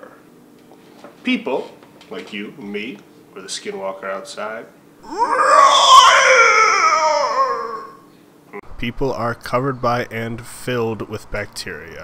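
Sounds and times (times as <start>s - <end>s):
eerie wailing cry: 5.0s - 8.0s.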